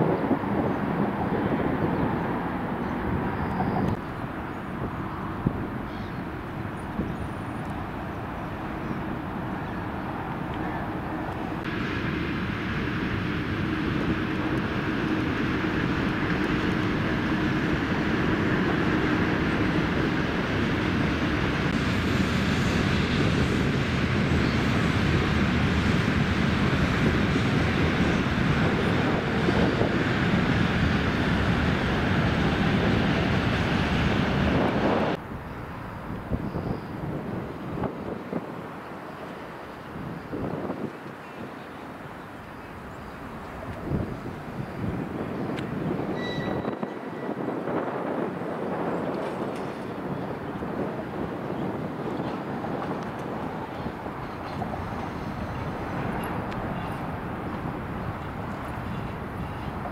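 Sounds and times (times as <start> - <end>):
aircraft engine roar: 0.0 - 59.9.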